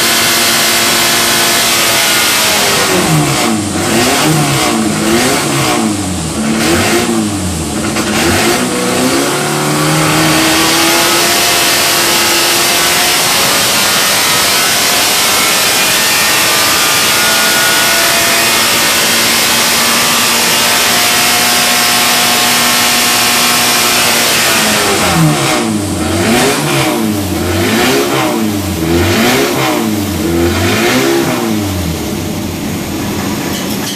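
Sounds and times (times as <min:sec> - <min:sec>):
car engine revving: 0:00.0 - 0:33.4.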